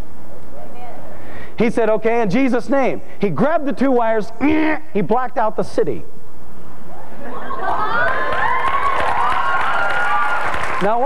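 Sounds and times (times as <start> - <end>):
crowd cheering: 7.3 - 11.0
applause: 7.9 - 11.0.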